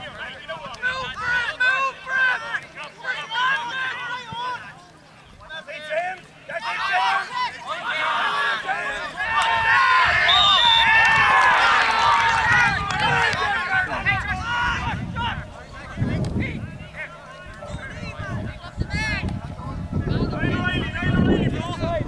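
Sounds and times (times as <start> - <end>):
crowd shouting and calling: 0.0 - 22.0.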